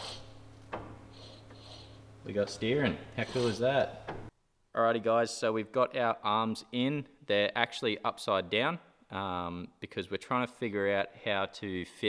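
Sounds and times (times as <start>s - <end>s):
steady low hum: 0.0s - 8.1s
faint metal rubbing: 1.0s - 4.1s.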